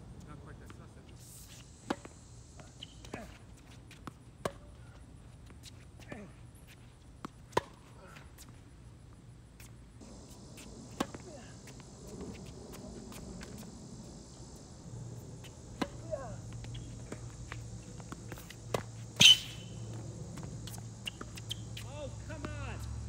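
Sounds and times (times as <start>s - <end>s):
tennis ball struck by racket: 10.1s - 13.7s, 15.4s - 22.6s.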